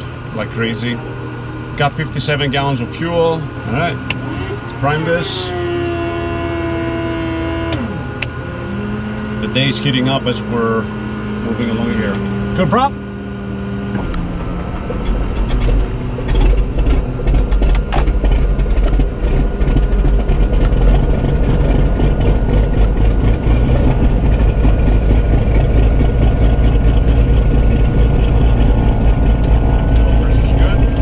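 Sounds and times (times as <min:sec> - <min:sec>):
piston aircraft engine starting: 0:00.0 - 0:13.0, 0:13.9 - 0:31.0.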